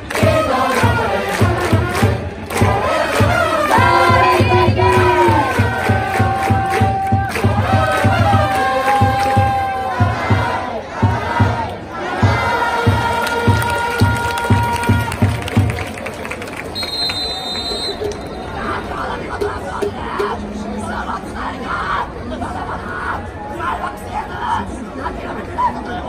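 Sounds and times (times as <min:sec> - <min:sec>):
crowd singing and shouting: 0:00.0 - 0:15.7
crowd chatter: 0:00.0 - 0:26.0
bass drum beating: 0:00.2 - 0:11.6.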